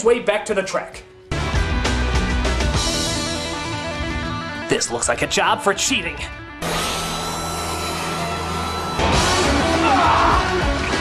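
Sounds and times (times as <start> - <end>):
high whine: 6.4 - 9.9.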